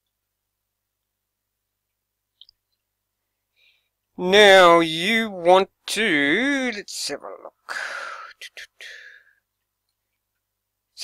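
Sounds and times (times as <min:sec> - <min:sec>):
man whispering: 0:06.6 - 0:09.3.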